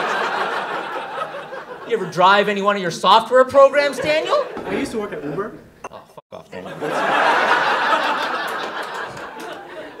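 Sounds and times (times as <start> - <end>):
audience laughing: 0.0 - 2.1, 6.6 - 10.0.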